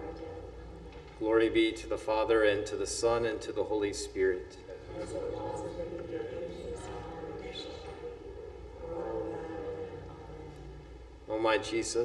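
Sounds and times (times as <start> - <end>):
congregation reciting in unison: 0.0 - 12.0
low room hum: 0.0 - 12.0.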